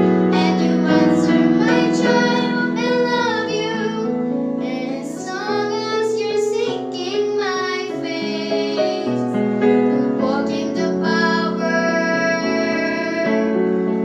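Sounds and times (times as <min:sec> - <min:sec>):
instrumental backing track: 0:00.0 - 0:14.0
girls singing together: 0:00.3 - 0:09.4, 0:10.0 - 0:13.5.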